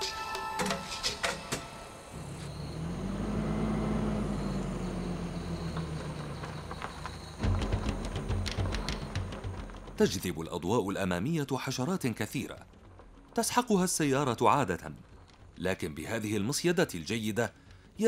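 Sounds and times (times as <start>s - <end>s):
music playing: 0.0s - 2.2s
car engine running: 2.1s - 9.9s.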